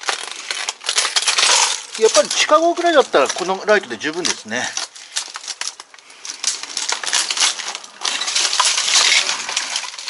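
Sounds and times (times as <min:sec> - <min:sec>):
rubble crunching underfoot: 0:00.0 - 0:10.0.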